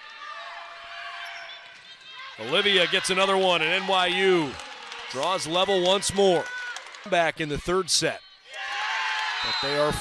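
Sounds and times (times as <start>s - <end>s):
crowd and player voices: 0.0s - 10.0s.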